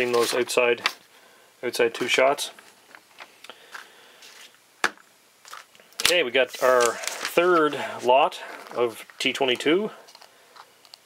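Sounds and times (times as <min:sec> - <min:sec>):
paper rustling: 0:05.4 - 0:10.7.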